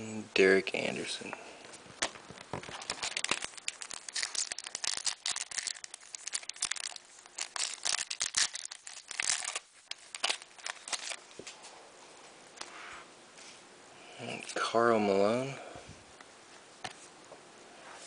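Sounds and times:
foil wrapper crinkling and tearing: 0:01.8 - 0:11.4.

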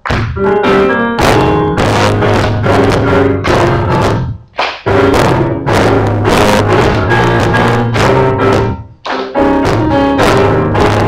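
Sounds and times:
electronic keyboard chords and hits: 0:00.0 - 0:11.0
worship band music: 0:00.2 - 0:11.0.

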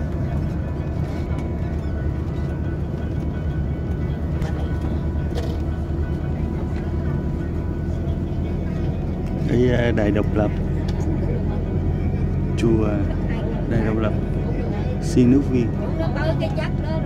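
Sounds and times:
bus engine and road drone: 0:00.0 - 0:17.0
faint music: 0:00.0 - 0:17.0.

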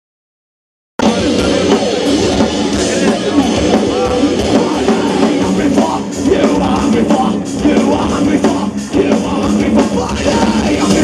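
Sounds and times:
heavy metal band playing: 0:01.0 - 0:11.0.

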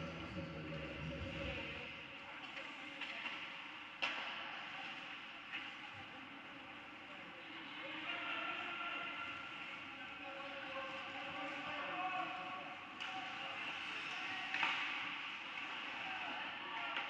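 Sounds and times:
indoor rink noise: 0:00.0 - 0:17.0
distant voices and shouts: 0:06.9 - 0:17.0.

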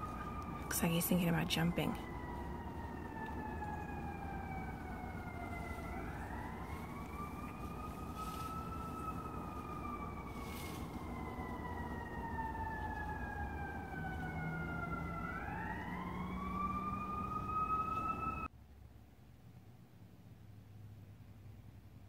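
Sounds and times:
steady low rumble: 0:00.0 - 0:16.4
siren wailing: 0:00.0 - 0:18.5.

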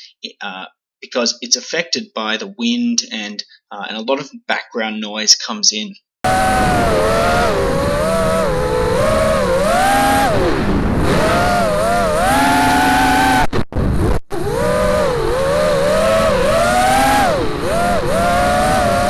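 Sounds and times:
drone motors and propellers whining: 0:06.3 - 0:19.0.

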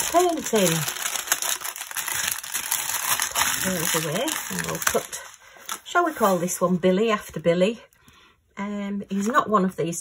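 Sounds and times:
plastic packaging crinkling: 0:00.0 - 0:06.6.

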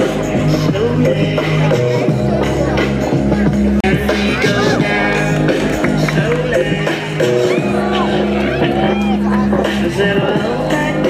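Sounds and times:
pop-rock music with singing: 0:00.0 - 0:11.0.

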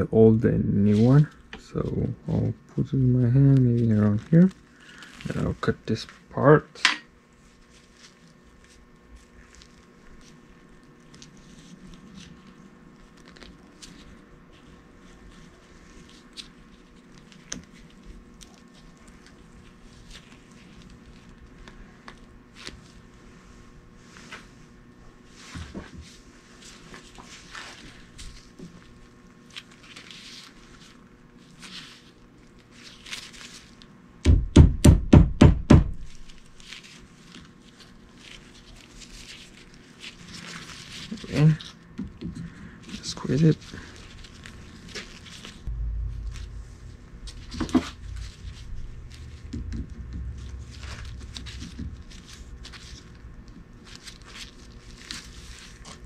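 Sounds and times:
heavy thumps: 0:34.2 - 0:36.3, 0:45.7 - 0:53.3.

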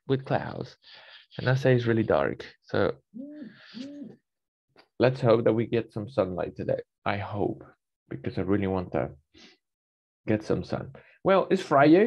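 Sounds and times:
speech: 0:00.0 - 0:04.1, 0:05.0 - 0:09.2, 0:10.3 - 0:12.0.

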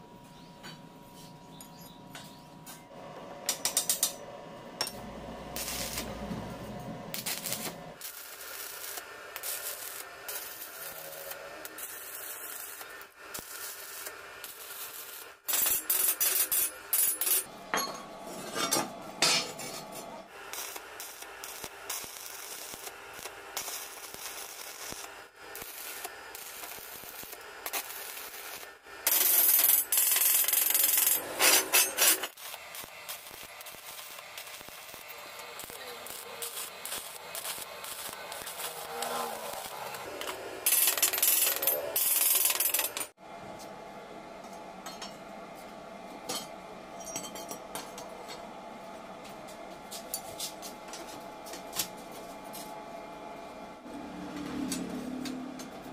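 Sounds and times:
welding arc crackling and hissing: 0:05.2 - 0:17.5, 0:19.6 - 0:43.2.

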